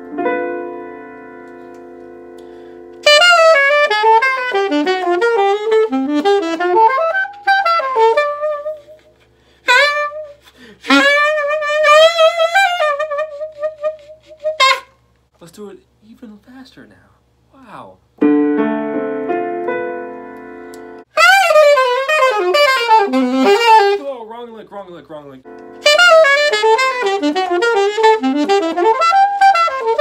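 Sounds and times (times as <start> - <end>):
keyboard chord: 0.0 - 8.7, 18.2 - 24.0, 25.4 - 30.0
saxophone playing fast lick: 2.4 - 15.0, 20.7 - 24.2, 25.5 - 30.0.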